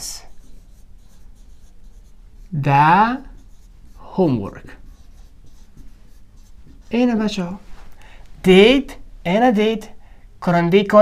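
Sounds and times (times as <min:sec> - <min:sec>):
marker pen scratching on whiteboard: 0:00.0 - 0:07.6.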